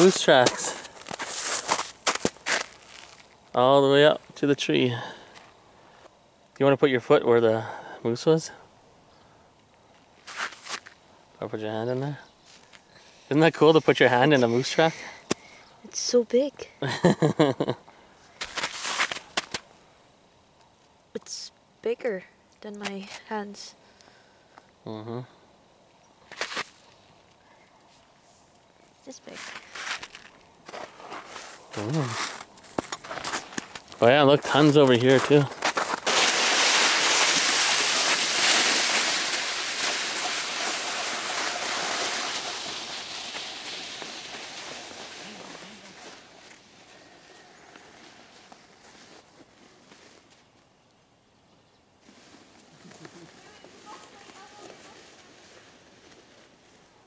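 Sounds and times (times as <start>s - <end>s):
hand pressing into crunching snow: 0.0s - 3.3s, 10.2s - 10.9s, 18.4s - 19.6s, 29.3s - 33.9s
sharp snow snaps: 0.0s - 3.3s, 10.2s - 11.0s, 18.4s - 19.6s, 26.3s - 26.8s, 29.2s - 33.9s, 34.5s - 46.6s
snowboard sliding over snow: 34.0s - 50.2s, 52.0s - 56.8s.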